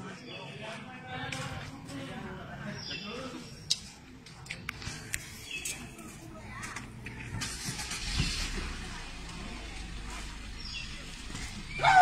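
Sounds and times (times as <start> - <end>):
vehicle engine rumbling: 1.0 - 12.0.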